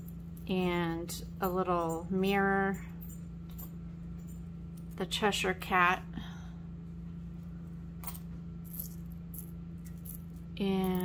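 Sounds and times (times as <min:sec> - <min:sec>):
metal charms clinking: 0:00.0 - 0:05.1, 0:08.0 - 0:11.0
steady low hum: 0:00.0 - 0:11.0.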